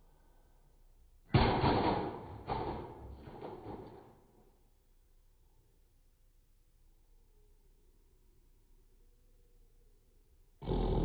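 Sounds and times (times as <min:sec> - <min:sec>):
knock: 0:01.4 - 0:04.1
objects crashing onto monitor: 0:01.4 - 0:04.2
objects clattering: 0:01.6 - 0:04.2.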